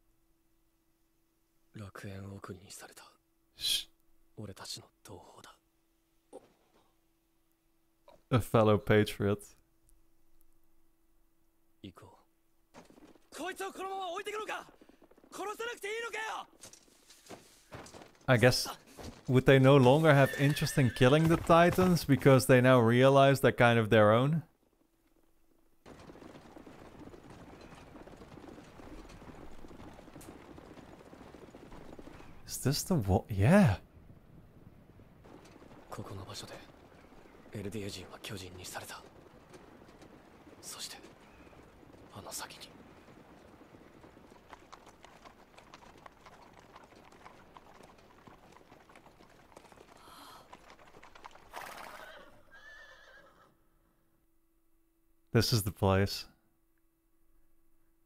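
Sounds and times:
horses galloping: 0:12.6 - 0:53.6.

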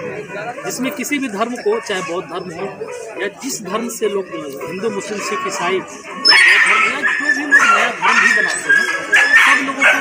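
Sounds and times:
man talking: 0:00.6 - 0:10.0
dog barking: 0:06.3 - 0:10.0.

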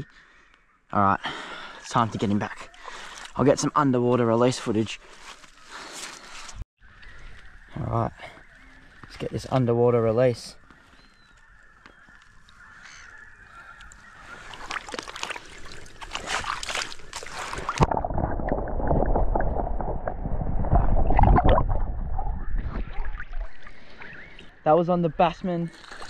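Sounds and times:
shallow water splashing: 0:13.7 - 0:24.6.

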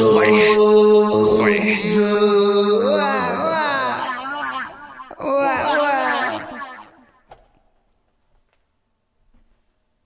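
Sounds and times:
man singing a held note: 0:00.0 - 0:04.0.

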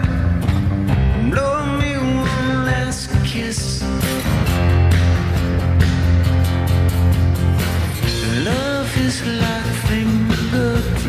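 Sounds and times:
drums: 0:00.0 - 0:11.0
heavy bass: 0:00.0 - 0:11.0
rock band playing live: 0:00.0 - 0:11.0.

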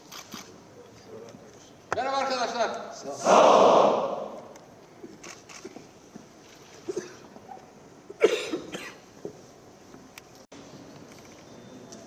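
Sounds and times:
faint crowd in a hall: 0:00.0 - 0:12.0
person coughing: 0:08.2 - 0:09.0.

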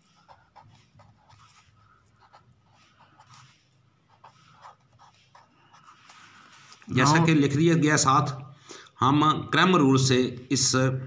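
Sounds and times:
marker pen writing on paper: 0:00.0 - 0:07.4.

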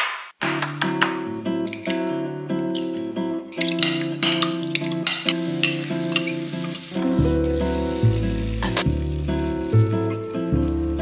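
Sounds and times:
egg sizzling in frying pan: 0:05.1 - 0:10.1
background music with bass: 0:07.0 - 0:11.0.

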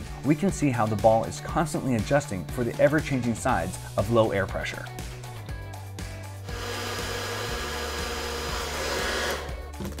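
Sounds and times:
background music: 0:00.0 - 0:10.0
hair dryer blowing: 0:06.4 - 0:09.6.

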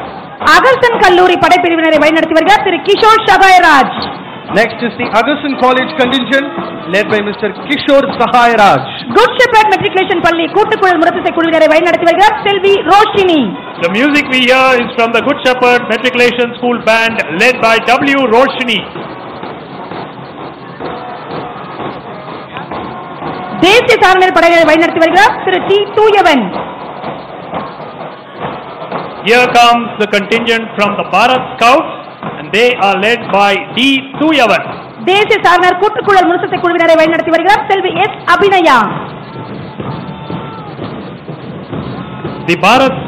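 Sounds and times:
faint marching band playing: 0:00.0 - 0:43.0
parade crowd noise: 0:00.0 - 0:43.0
steady drum beat: 0:00.0 - 0:43.0.

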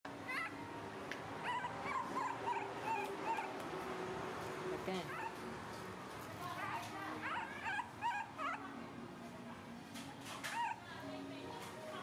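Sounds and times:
baby monkey crying: 0:07.2 - 0:08.6.

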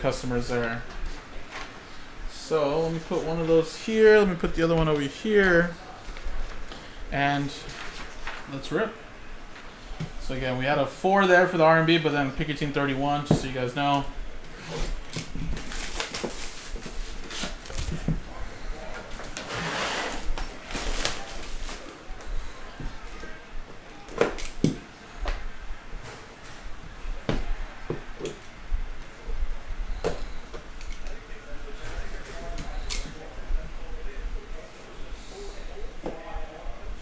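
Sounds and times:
shrink wrap crinkling and tearing: 0:15.1 - 0:18.0.

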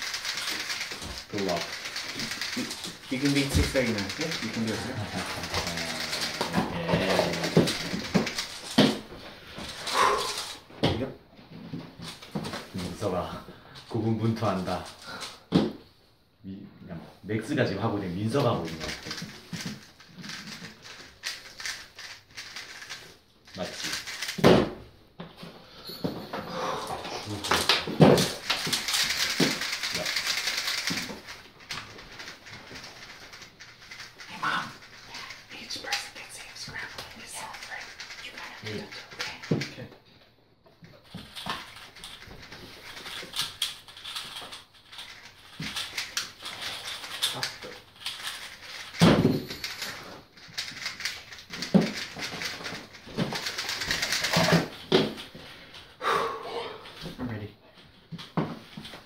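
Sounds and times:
plastic cubes clicking: 0:00.0 - 0:10.6, 0:18.4 - 0:24.5, 0:27.0 - 0:39.7, 0:41.1 - 0:55.3.

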